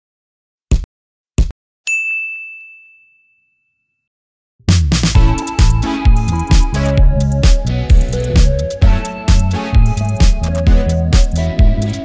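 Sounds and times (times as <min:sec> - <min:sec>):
bell-like ding: 0:01.9 - 0:04.0.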